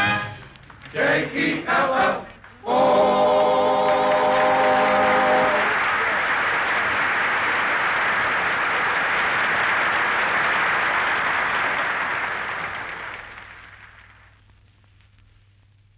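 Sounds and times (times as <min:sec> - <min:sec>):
audience applauding: 0:02.2 - 0:14.5.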